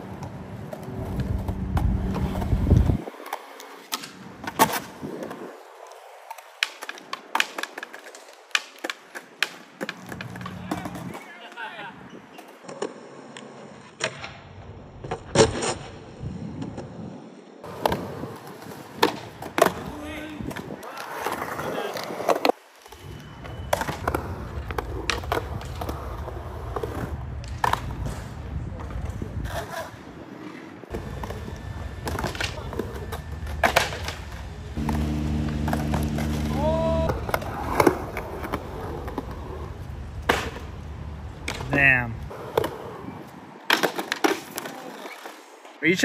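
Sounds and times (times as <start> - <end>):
skateboard rolling: 0.0 - 11.3, 12.0 - 45.8
skateboard clacking on ground: 0.0 - 14.4, 17.6 - 40.8, 41.4 - 45.5.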